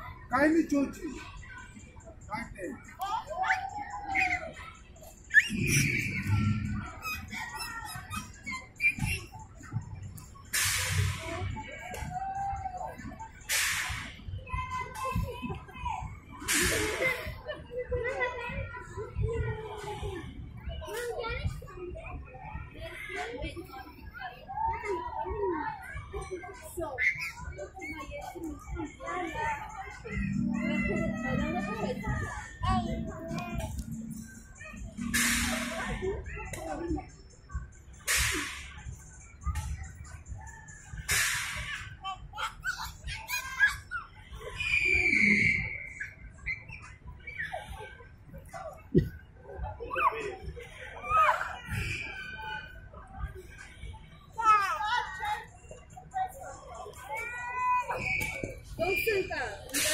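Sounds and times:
squeaky vocal sounds: 5.3 - 9.4.

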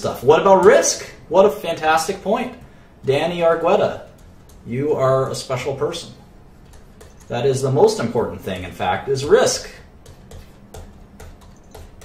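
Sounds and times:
computer mouse clicking: 4.1 - 4.7, 6.6 - 7.3, 10.0 - 12.0.

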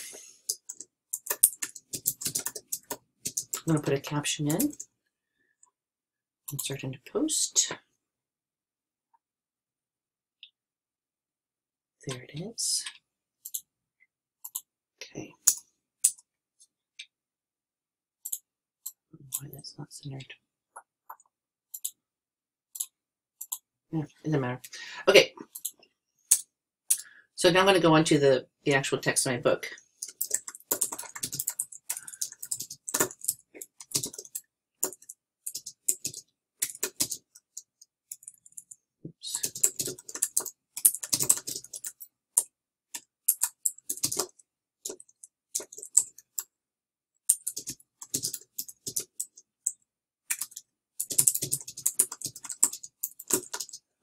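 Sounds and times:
computer mouse clicks: 0.4 - 3.7, 12.9 - 13.7, 14.4 - 14.7, 21.1 - 22.0, 22.8 - 23.6, 25.5 - 27.0
computer keyboard typing: 0.4 - 4.9, 12.3 - 13.7, 14.4 - 14.7, 21.1 - 22.0, 22.8 - 23.7, 30.0 - 46.5, 47.2 - 53.9.

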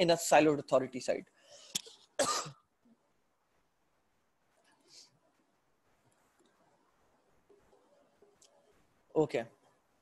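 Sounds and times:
man coughing: 2.2 - 2.6.

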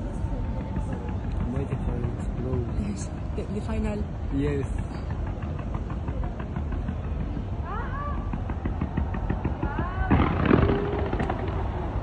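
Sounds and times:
fireworks popping and crackling: 0.0 - 12.0.

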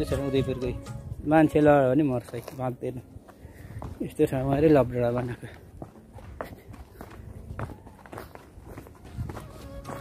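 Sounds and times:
footsteps on dirt path: 1.0 - 10.0.

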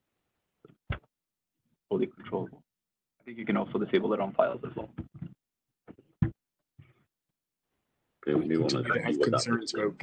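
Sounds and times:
man talking: 3.3 - 5.0, 8.2 - 10.0.

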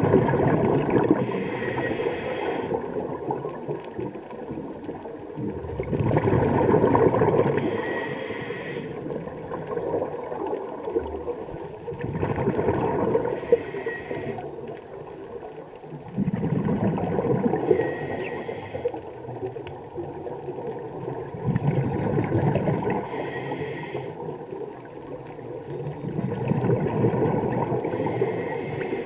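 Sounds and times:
exhaled bubbles underwater: 0.0 - 29.0
regulator inhale hiss: 1.2 - 3.0, 7.6 - 9.1, 13.3 - 14.6, 17.6 - 19.1, 23.0 - 24.3, 27.8 - 29.0.

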